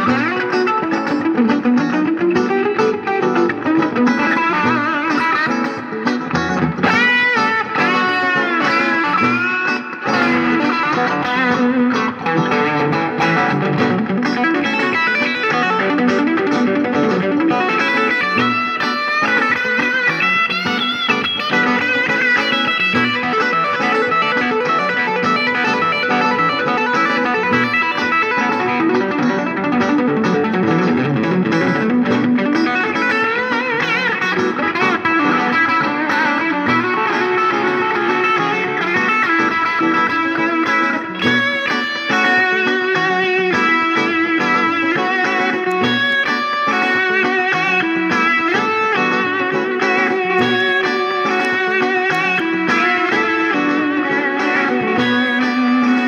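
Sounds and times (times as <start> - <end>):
electric guitar playing: 0.0 - 56.0.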